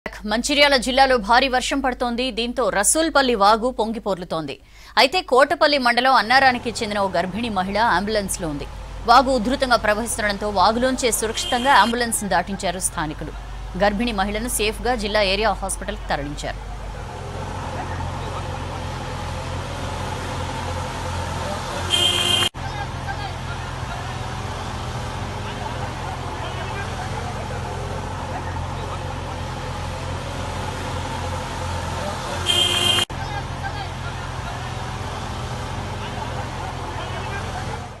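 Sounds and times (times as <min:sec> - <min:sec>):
people's voices: 0:05.8 - 0:31.3, 0:31.9 - 0:38.0
vehicle engines running: 0:06.0 - 0:38.0.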